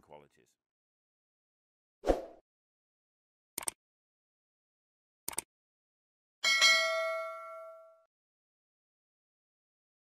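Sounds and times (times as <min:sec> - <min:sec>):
notification bell chime: 0:06.4 - 0:08.1.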